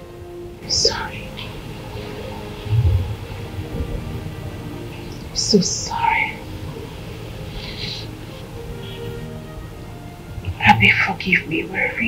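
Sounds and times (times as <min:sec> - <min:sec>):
music of sustained notes: 0:00.0 - 0:12.0.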